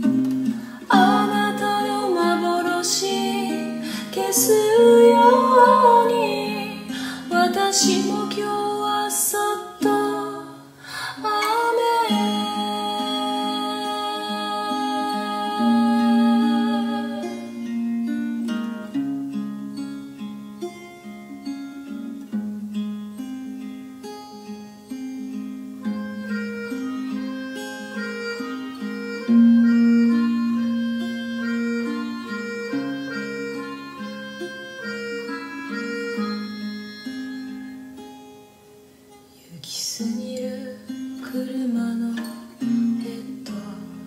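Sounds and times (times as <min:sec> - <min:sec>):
keyboard harmonica melody: 0:00.0 - 0:08.4, 0:11.8 - 0:18.8, 0:25.8 - 0:38.7
acoustic guitar: 0:00.0 - 0:44.0.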